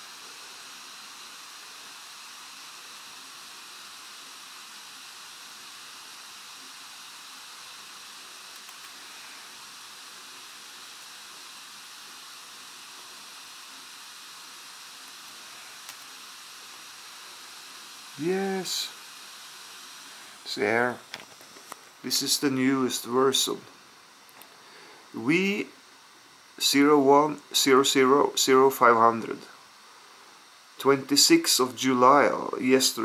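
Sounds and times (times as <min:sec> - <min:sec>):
microphone hiss: 0:00.0 - 0:33.0.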